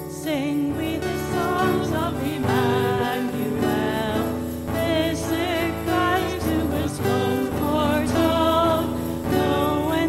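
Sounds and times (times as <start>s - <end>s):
person singing melody: 0.0s - 10.0s
praise band playing slow song: 0.2s - 10.0s.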